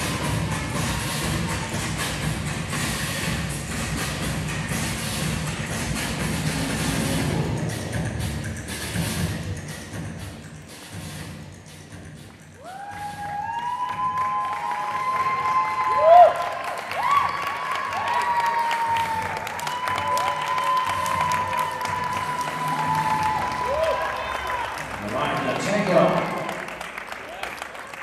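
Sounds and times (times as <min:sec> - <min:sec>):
audience applause and cheering: 0:00.0 - 0:03.4, 0:12.5 - 0:28.0.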